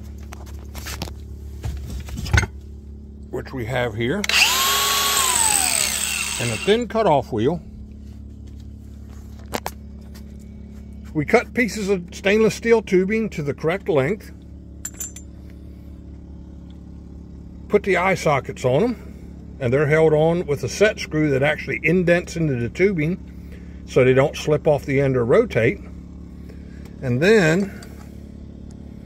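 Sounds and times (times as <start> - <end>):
steady low hum: 0.0 - 29.0
handling knocks and clunks: 0.2 - 2.6.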